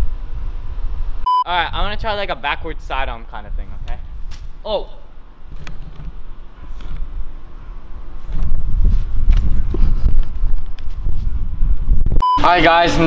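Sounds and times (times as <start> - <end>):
wind buffeting microphone: 5.6 - 12.2.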